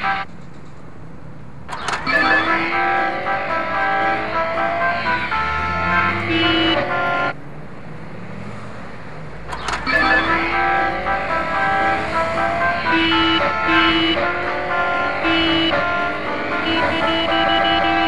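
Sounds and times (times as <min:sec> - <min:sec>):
street traffic rumble: 0:00.0 - 0:18.0
sharp clicks: 0:01.7 - 0:02.1, 0:09.5 - 0:09.9
simple electronic tune: 0:02.0 - 0:07.3, 0:09.8 - 0:12.1, 0:12.7 - 0:18.0.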